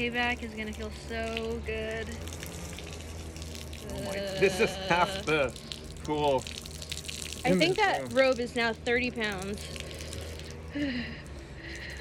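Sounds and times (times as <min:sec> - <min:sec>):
water splashing from wrung robe: 0:00.0 - 0:12.0.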